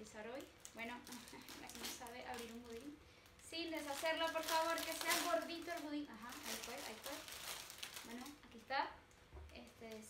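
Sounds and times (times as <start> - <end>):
plastic bag rustling: 0.0 - 8.7.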